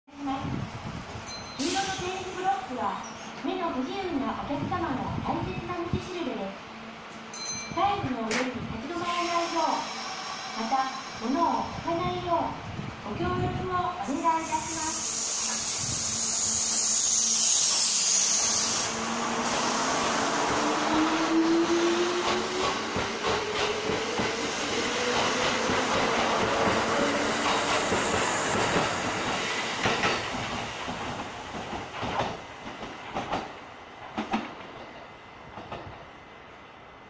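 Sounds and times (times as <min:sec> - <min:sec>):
train hiss: 0:00.4 - 0:02.9, 0:08.9 - 0:12.9, 0:14.0 - 0:31.3.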